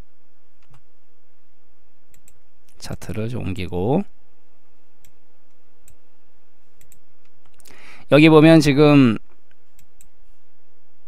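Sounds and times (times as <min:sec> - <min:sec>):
faint steady hum: 0:00.0 - 0:11.0
computer mouse clicks: 0:02.1 - 0:02.4, 0:06.8 - 0:07.7, 0:09.4 - 0:10.2.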